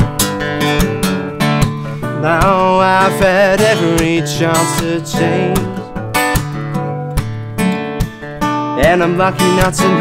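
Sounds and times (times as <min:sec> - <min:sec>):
acoustic guitar strumming: 0:00.0 - 0:10.0
person singing: 0:01.8 - 0:06.0, 0:08.8 - 0:10.0.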